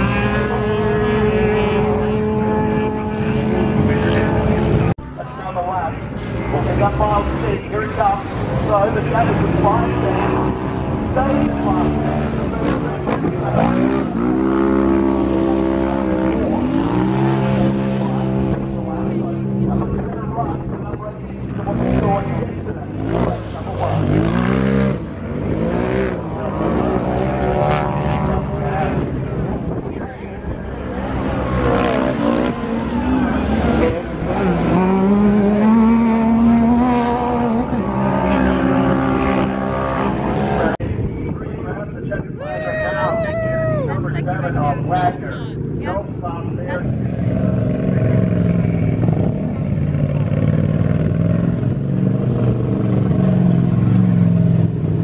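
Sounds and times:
engines revving: 0.0 - 41.0, 42.5 - 55.0.

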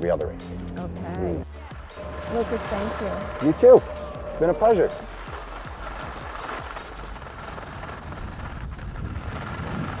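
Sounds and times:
skis scraping over hard snow: 4.4 - 10.0
wind rushing over microphone: 7.2 - 10.0.

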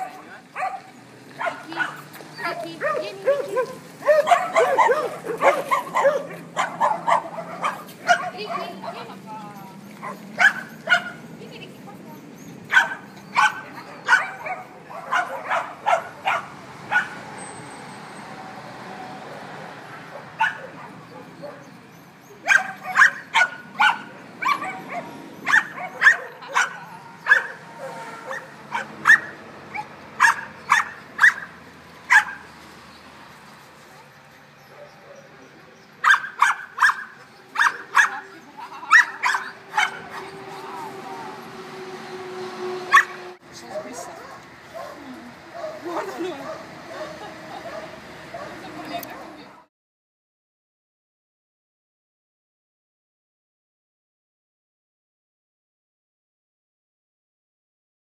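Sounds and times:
dogs barking: 0.0 - 9.2, 9.8 - 11.3, 12.4 - 17.4, 19.7 - 32.6, 34.6 - 41.5, 42.8 - 49.5.

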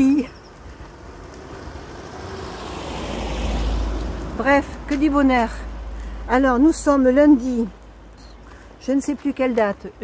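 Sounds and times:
car approaching: 0.0 - 8.8.

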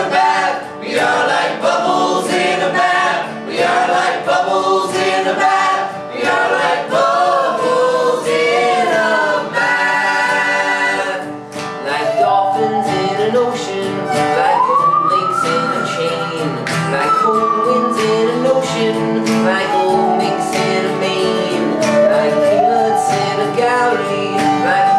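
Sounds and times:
acoustic guitar strumming: 0.0 - 24.9
group singing in harmony: 0.0 - 24.9.

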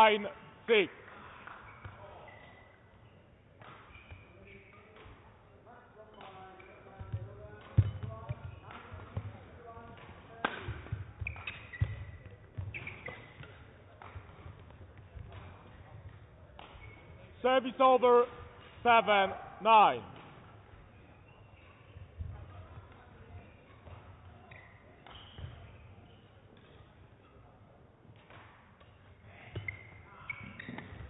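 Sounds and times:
racket hitting shuttlecock: 9.9 - 15.8, 16.5 - 17.0, 23.7 - 25.7.

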